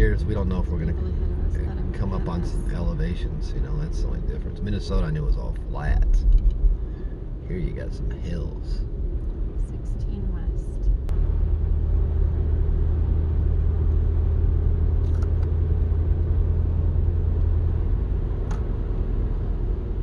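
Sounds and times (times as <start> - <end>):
car cabin road rumble: 0.0 - 20.0
tyres on snowy road: 0.0 - 20.0.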